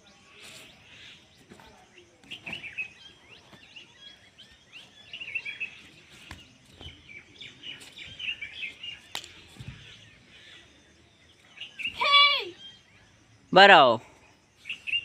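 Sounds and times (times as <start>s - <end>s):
small birds twittering: 0.0s - 15.0s.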